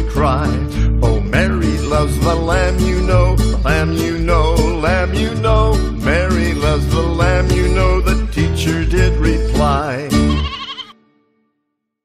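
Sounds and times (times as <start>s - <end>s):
children's song music: 0.0s - 10.6s
sheep bleat: 10.1s - 11.0s.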